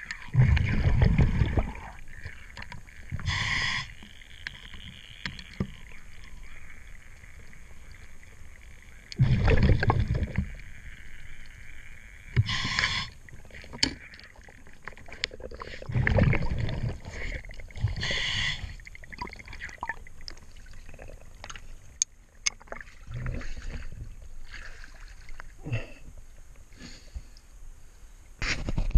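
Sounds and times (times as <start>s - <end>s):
underwater exhaled bubbles: 0.0s - 26.1s
water sloshing and splashing: 0.0s - 26.6s
steady hiss: 3.1s - 4.2s.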